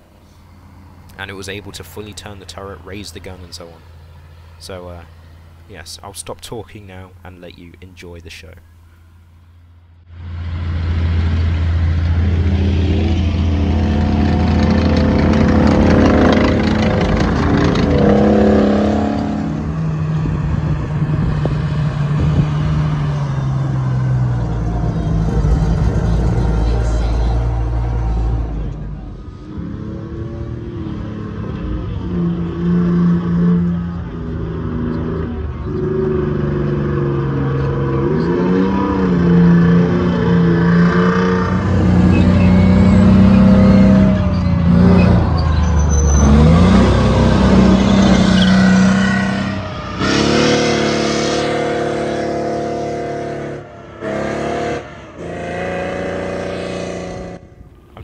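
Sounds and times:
heavy vehicle engines revving: 0.0s - 8.2s, 9.0s - 58.0s.

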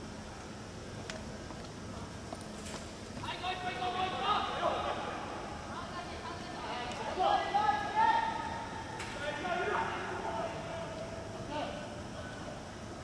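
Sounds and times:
distant shouts and calls: 6.6s - 10.8s.

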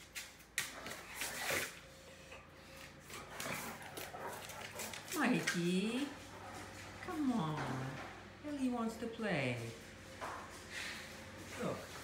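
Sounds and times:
dog paws stomping on tile: 2.8s - 8.2s.

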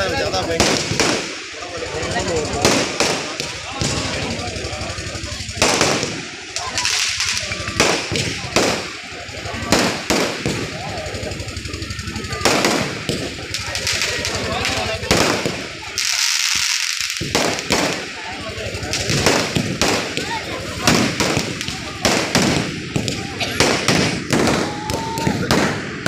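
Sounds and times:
fireworks bangs: 0.0s - 26.0s.

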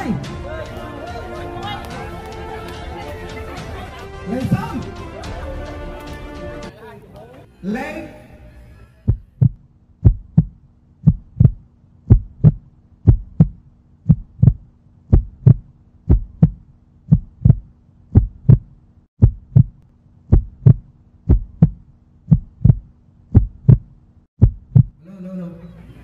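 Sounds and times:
crowd noise: 0.0s - 9.0s
heartbeat thumps: 9.1s - 25.0s.

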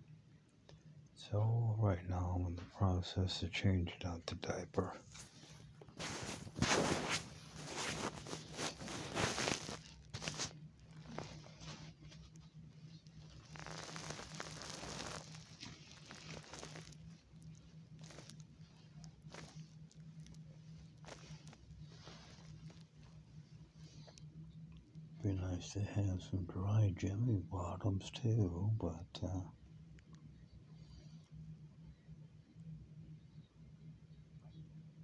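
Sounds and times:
steady low hum: 0.0s - 35.0s
diaper and bedding rustling: 5.1s - 23.2s.

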